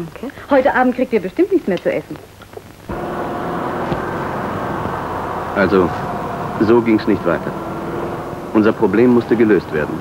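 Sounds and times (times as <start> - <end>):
road noise: 2.8 - 10.0
car engine hum: 2.9 - 10.0.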